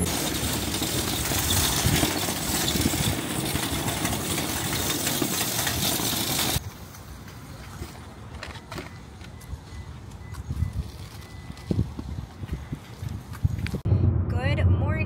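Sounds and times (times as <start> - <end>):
shopping cart rolling on asphalt: 0.0 - 13.6.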